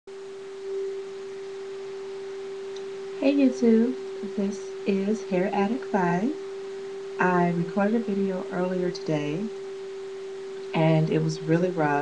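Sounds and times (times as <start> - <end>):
steady single-pitched tone: 0.1 - 12.0.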